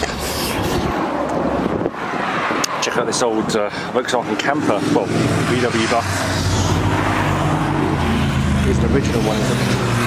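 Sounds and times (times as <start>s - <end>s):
wind buffeting microphone: 0.5s - 3.6s.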